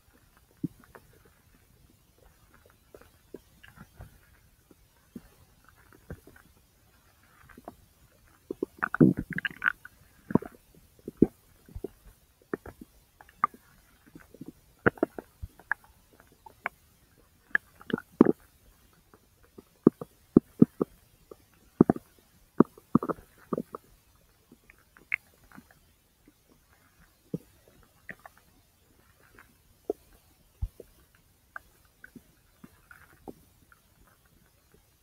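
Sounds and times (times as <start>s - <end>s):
intestine gurgling: 8.5s - 15.8s, 19.8s - 23.9s.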